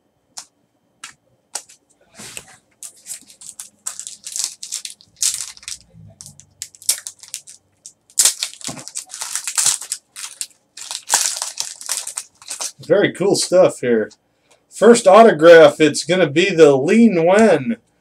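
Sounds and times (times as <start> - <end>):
foil wrapper crinkling and tearing: 2.8 - 12.9.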